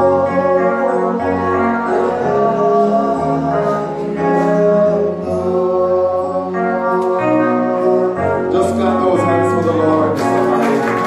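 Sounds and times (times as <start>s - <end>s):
keyboard accompaniment: 0.0s - 11.0s
praise team and congregation singing: 0.0s - 11.0s.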